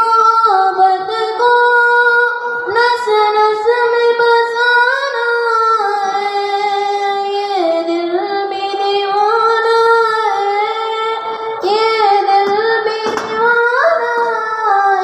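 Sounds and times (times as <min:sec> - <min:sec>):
high voice singing unaccompanied: 0:00.0 - 0:15.0.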